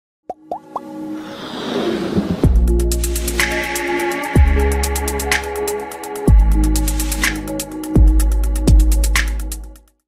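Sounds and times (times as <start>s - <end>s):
electronic intro music: 0.6s - 9.0s.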